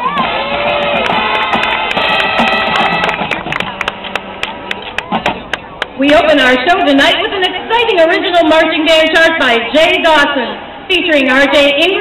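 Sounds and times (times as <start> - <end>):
brass chords: 0.1 - 9.3.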